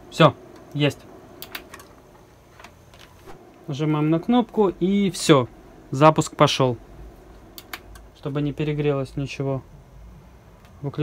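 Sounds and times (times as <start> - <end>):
probe clicking and tapping: 7.5 - 8.1.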